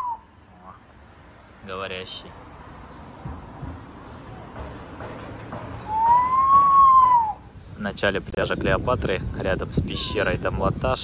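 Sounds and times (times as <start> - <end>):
parrot whistling: 0.0 - 0.3, 5.9 - 7.4.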